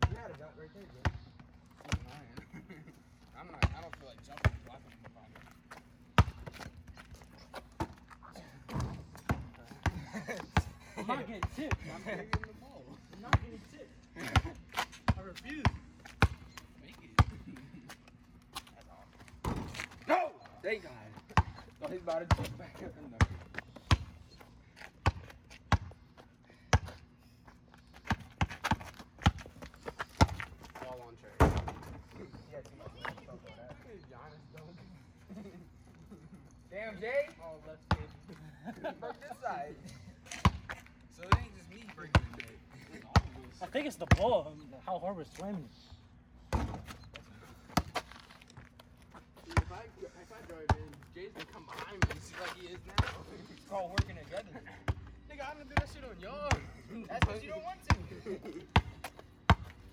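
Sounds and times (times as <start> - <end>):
basketball bouncing on asphalt: 0.0 - 2.4, 3.4 - 12.6, 13.2 - 17.6, 19.3 - 20.0, 21.2 - 27.0, 28.0 - 32.1, 37.9 - 38.2, 40.3 - 42.5, 43.1 - 44.4, 46.5 - 47.0, 47.6 - 55.1, 55.7 - 59.9.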